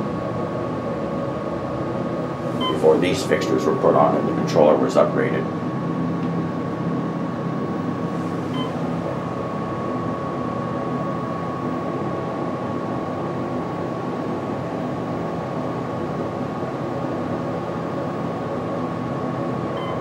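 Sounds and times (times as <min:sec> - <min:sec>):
elevator car descending hum: 0:00.0 - 0:20.0
faint beep: 0:19.8 - 0:20.0.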